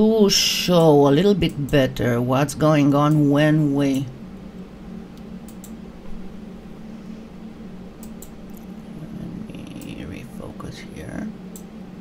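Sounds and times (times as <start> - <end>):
steady low hum: 0.0 - 12.0
faint clicks: 3.9 - 5.8, 8.0 - 8.7, 11.5 - 11.8.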